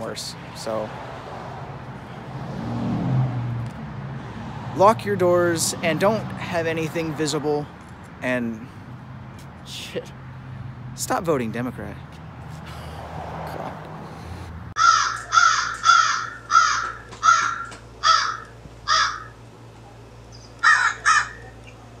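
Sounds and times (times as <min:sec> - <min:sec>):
outdoor background noise: 0:00.0 - 0:22.0
crow cawing: 0:14.8 - 0:19.4, 0:20.6 - 0:21.6.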